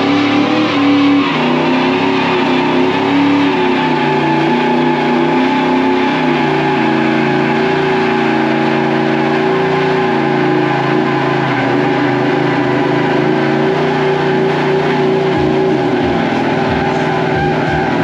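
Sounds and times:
car engine at high revs: 0:00.0 - 0:18.0
rear tyres spinning: 0:00.0 - 0:18.0.

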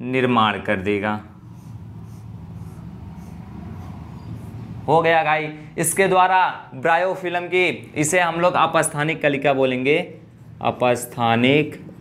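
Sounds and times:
steady low hum: 0:00.7 - 0:05.0
marker scratching on whiteboard: 0:01.3 - 0:04.9.

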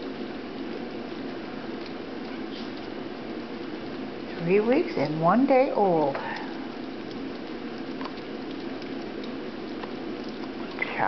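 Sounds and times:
puppies lapping and chewing food: 0:00.0 - 0:11.0.

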